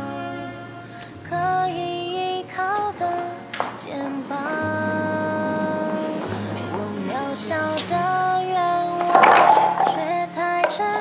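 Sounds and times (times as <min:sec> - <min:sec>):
person singing a slow ballad: 0:00.0 - 0:11.0
soft accompaniment: 0:00.0 - 0:11.0.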